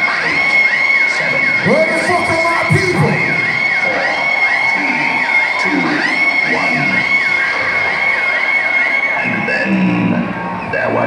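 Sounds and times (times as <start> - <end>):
crowd shouting and cheering: 0.0 - 11.0
loud electronic music: 0.0 - 11.0.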